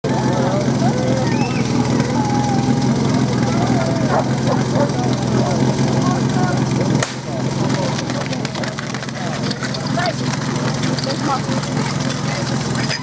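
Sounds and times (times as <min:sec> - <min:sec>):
low engine drone: 0:00.0 - 0:13.0
people talking and calling: 0:00.0 - 0:13.0.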